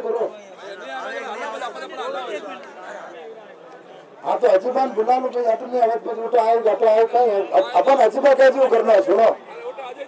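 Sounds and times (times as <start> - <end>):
men talking over one another: 0.0 - 10.0.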